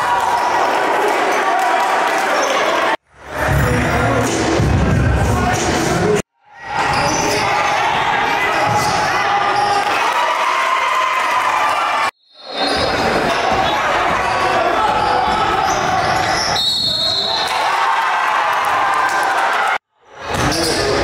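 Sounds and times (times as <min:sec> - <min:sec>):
players and spectators voices: 0:00.0 - 0:21.0.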